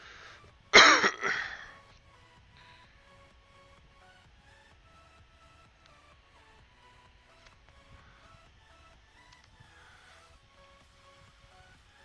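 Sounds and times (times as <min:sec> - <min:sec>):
man clearing his throat: 0:00.8 - 0:01.6.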